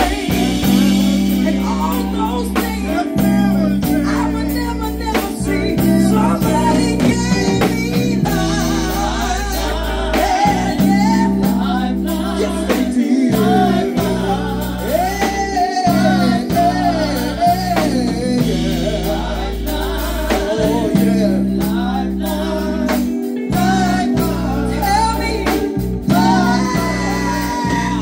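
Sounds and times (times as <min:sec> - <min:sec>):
drum kit: 0:00.0 - 0:28.0
keyboards: 0:00.0 - 0:28.0
person singing: 0:00.0 - 0:28.0
sustained bass line: 0:00.0 - 0:28.0.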